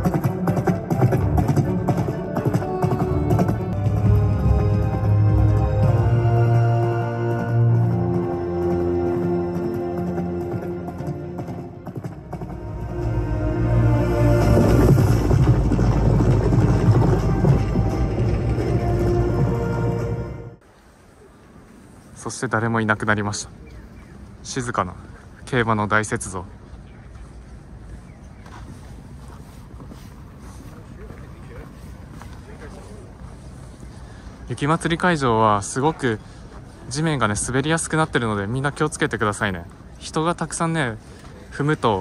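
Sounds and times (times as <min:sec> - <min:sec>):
galloping hoofbeats: 0:00.0 - 0:06.2, 0:07.4 - 0:20.4
soundtrack music with deep bass: 0:00.0 - 0:20.6
wind noise on microphone: 0:12.3 - 0:20.4
footsteps on icy snow: 0:26.6 - 0:35.3.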